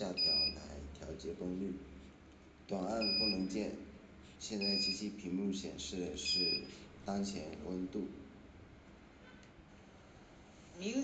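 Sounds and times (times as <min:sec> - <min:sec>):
person talking: 0:00.0 - 0:01.8, 0:02.7 - 0:08.2, 0:10.8 - 0:11.0.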